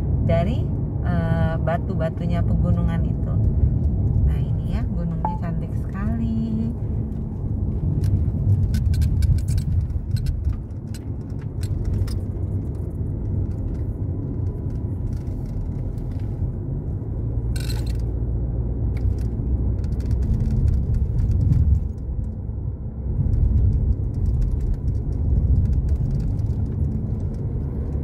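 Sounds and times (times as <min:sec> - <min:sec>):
car road noise rumble: 0:00.0 - 0:28.0.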